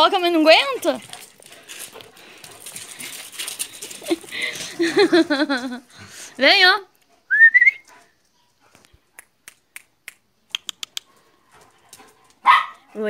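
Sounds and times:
dog claws clicking on concrete: 1.0s - 4.7s, 8.8s - 12.4s.

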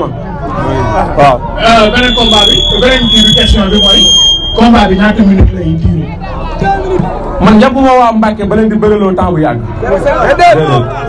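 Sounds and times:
men talking: 0.0s - 11.0s
high-pitched whistle-like tone: 1.6s - 5.7s.

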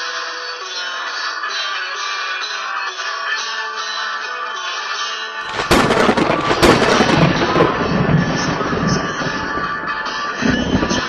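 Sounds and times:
music: 0.0s - 11.0s
loud sharp crackling bursts: 5.5s - 11.0s.

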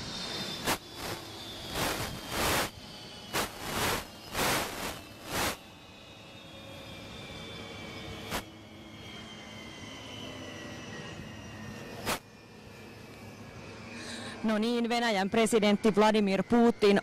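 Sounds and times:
helicopter turbine winding down: 0.0s - 17.0s.

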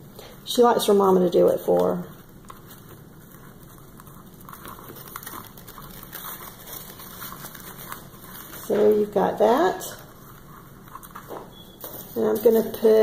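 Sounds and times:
rustling and crackling of leaves: 0.5s - 13.0s.

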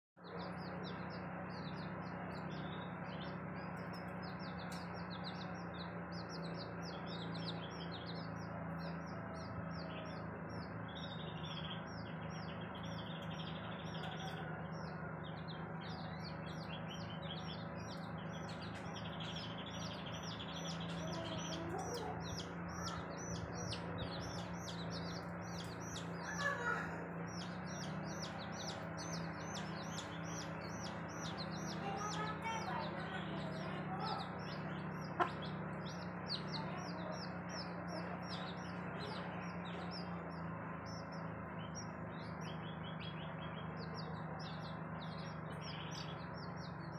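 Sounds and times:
steady low hum: 0.2s - 46.9s
chicks peeping: 0.3s - 46.9s
hen clucking: 35.1s - 35.6s.

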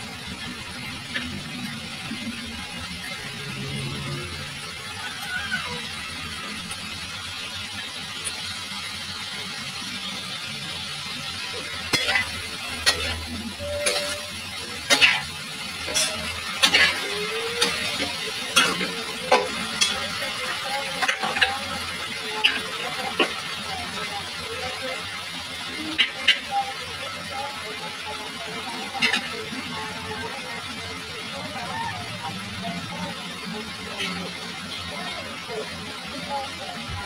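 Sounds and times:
onions sizzling in oil: 0.0s - 37.0s
metal spatula scraping wok: 11.5s - 20.1s.

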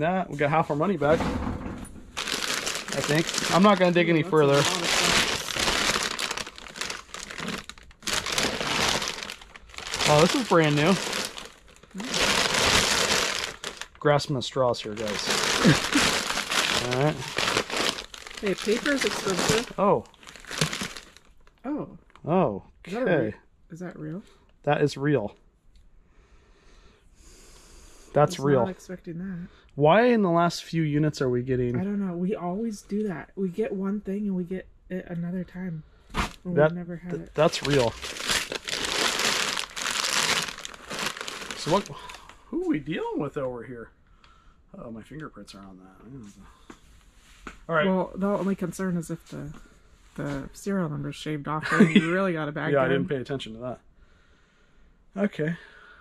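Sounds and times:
clothes rustling: 1.8s - 13.9s, 15.0s - 21.0s
plastic bag crinkling: 2.1s - 14.0s, 14.9s - 21.5s, 37.3s - 42.4s.

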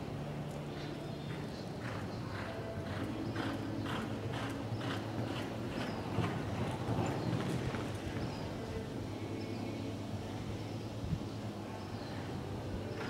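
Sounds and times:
horse hoofbeats on soft dirt: 0.5s - 8.6s.

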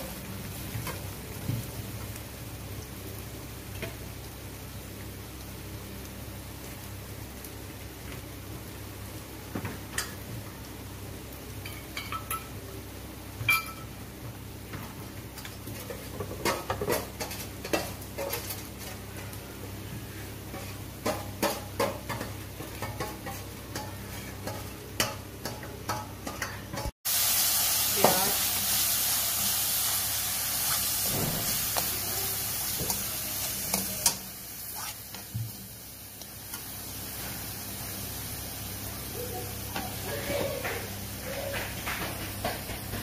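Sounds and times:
onions frying: 0.0s - 43.0s
paste sizzling in hot oil: 27.0s - 42.8s.

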